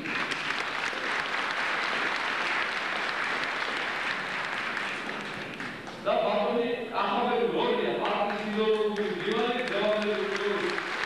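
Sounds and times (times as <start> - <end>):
audience applauding: 0.0 - 6.0, 8.0 - 11.0.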